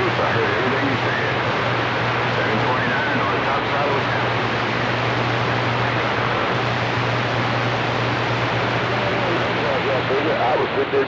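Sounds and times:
low hum: 0.0 - 11.0
radio static hiss: 0.0 - 11.0.

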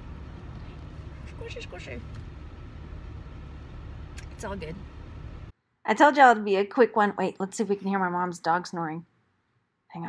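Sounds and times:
car road and engine noise: 0.0 - 5.6.

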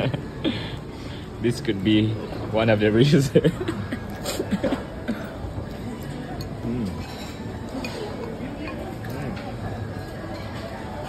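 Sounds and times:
indistinct diners' voices: 0.0 - 11.0
faint tableware clinks: 5.8 - 11.0.

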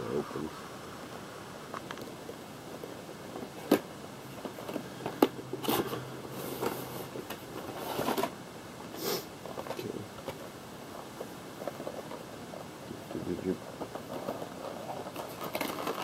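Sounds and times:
box scraping and rustling: 3.4 - 8.4.

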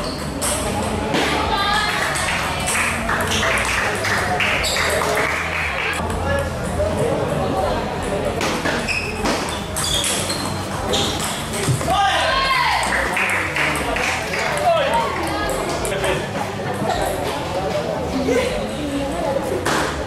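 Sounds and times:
voices chattering: 0.0 - 20.0
table tennis balls clicking: 1.8 - 6.0, 8.6 - 11.9.

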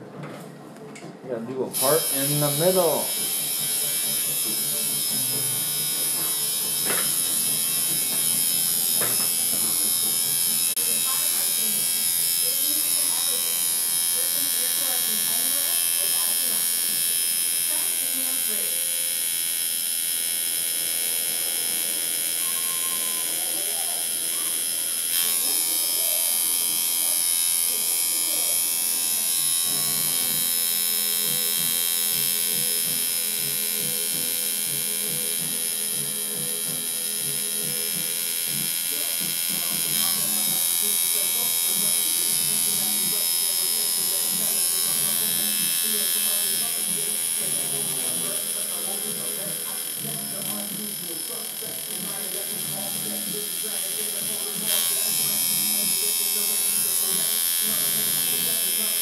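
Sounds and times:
tattoo machine buzzing: 1.7 - 59.0.

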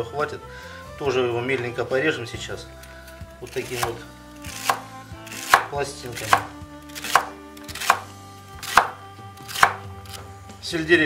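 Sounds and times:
knife chopping celery on board: 3.5 - 9.9.

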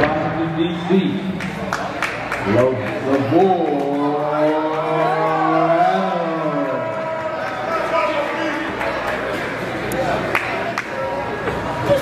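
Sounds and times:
gym hall hubbub: 0.0 - 12.0.

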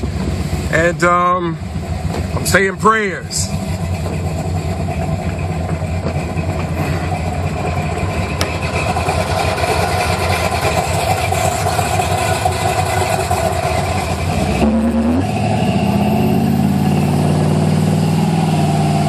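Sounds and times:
car engine accelerating: 0.0 - 19.0.

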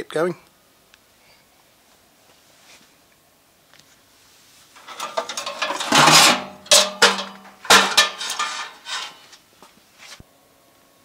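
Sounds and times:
metal clattering and scraping: 4.8 - 9.4.

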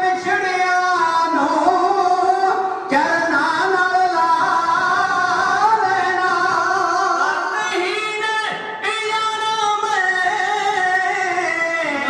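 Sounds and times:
men singing together: 0.0 - 7.8.

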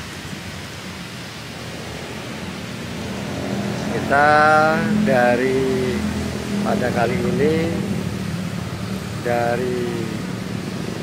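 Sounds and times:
outdoor rushing hiss: 0.0 - 11.0.

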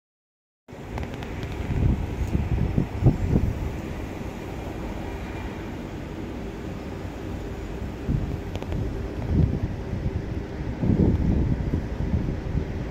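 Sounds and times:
faint steady hum: 0.7 - 12.9
wind buffeting microphone: 0.7 - 12.9.

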